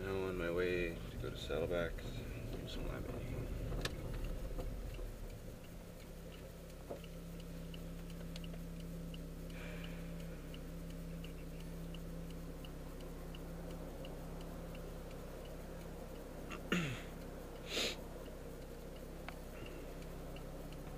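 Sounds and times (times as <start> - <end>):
car engine humming: 0.0 - 20.9
turn signal clicking: 0.0 - 20.9.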